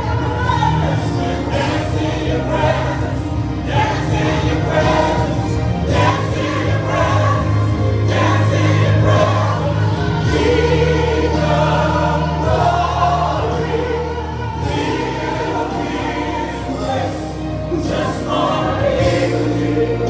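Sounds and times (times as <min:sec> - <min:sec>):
instrumental accompaniment: 0:00.0 - 0:20.0
voices singing worship song: 0:00.0 - 0:20.0.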